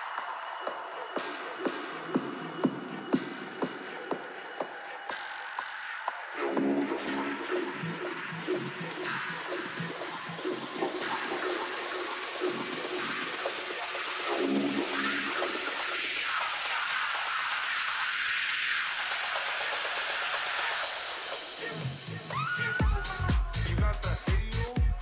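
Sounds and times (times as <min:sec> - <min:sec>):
techno synth and bass: 0:00.0 - 0:25.0.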